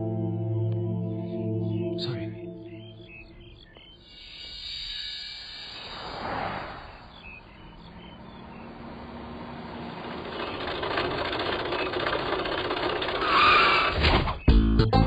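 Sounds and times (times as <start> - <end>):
music with plucked guitar and bass: 0.0 - 2.6, 14.5 - 15.0
jeep driving past: 5.5 - 13.9.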